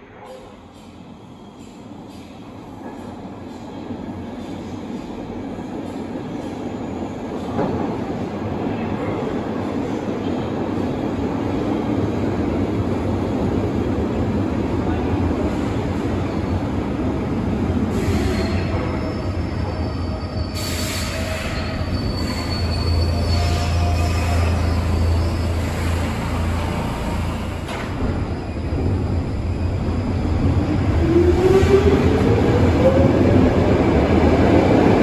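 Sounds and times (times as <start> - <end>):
metro train rumble: 0.0 - 35.0.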